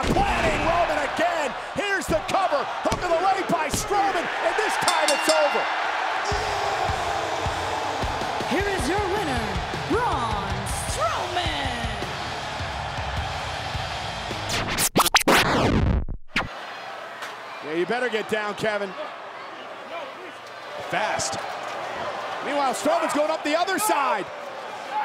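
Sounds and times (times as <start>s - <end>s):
arena crowd noise: 0.0s - 14.6s, 16.4s - 25.0s
man shouting: 6.3s - 7.4s
music: 6.3s - 14.9s.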